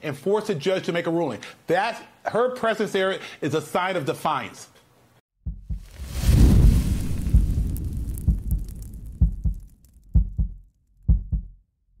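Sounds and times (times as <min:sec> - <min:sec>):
short deep thuds: 0:05.5 - 0:11.5
deep hit with whoosh: 0:05.7 - 0:09.6.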